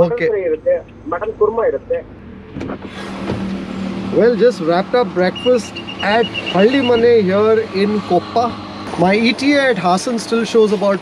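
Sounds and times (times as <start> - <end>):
man speaking: 0.0 - 2.1, 4.1 - 11.0
road traffic hiss: 2.8 - 11.0.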